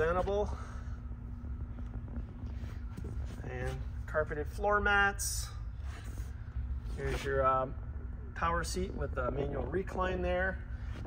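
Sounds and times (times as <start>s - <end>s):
faint constant hum: 0.0s - 11.0s
low rumble: 0.0s - 11.0s.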